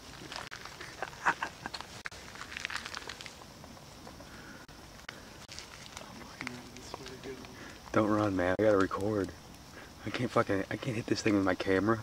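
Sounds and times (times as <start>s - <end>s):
footsteps rustling through undergrowth: 0.0s - 3.9s, 5.4s - 7.4s.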